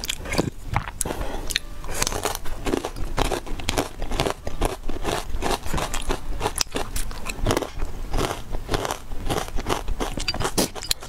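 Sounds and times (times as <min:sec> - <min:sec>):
person chewing food: 0:00.0 - 0:11.0.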